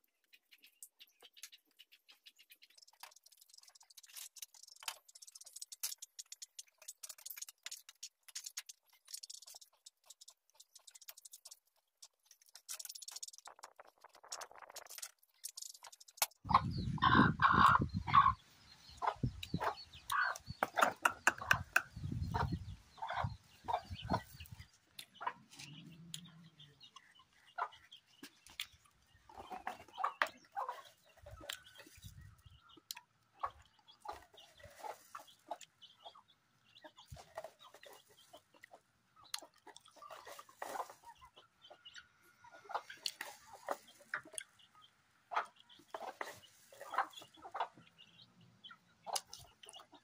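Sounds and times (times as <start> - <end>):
chickens clucking: 0.2 - 50.0.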